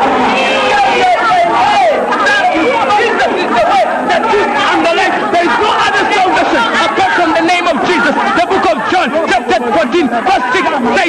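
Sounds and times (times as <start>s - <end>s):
babble of overlapping voices: 0.0s - 11.0s.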